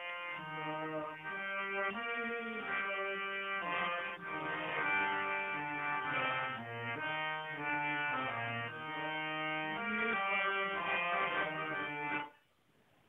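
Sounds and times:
harmonium slow melody: 0.0 - 12.3.

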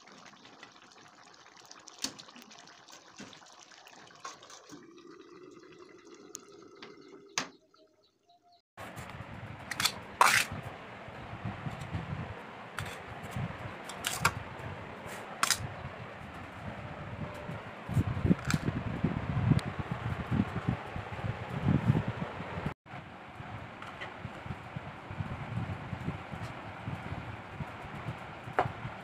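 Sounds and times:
low bumps: 8.8 - 22.7.

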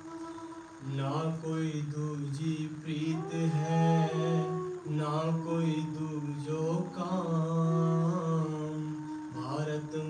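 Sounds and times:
man singing chant-like melody: 0.0 - 10.0.

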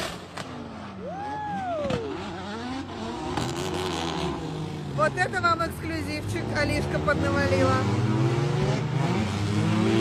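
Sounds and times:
car engines revving hard: 0.0 - 10.0.

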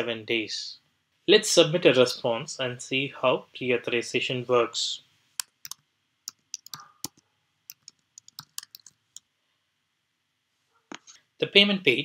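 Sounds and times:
keyboard keystrokes: 5.4 - 8.9.

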